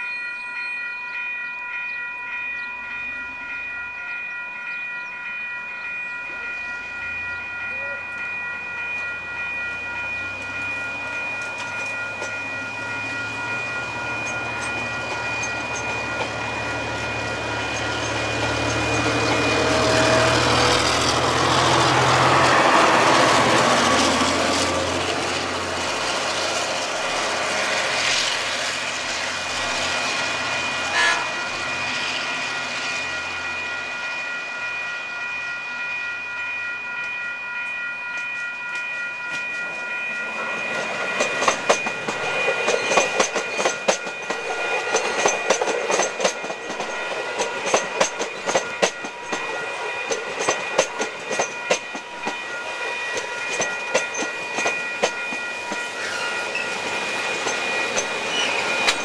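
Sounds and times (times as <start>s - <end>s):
level crossing warning bells: 0.0s - 59.0s
locomotive engine hum: 7.7s - 36.3s
train wheels clattering over rail joints: 40.7s - 52.5s, 56.8s - 59.0s.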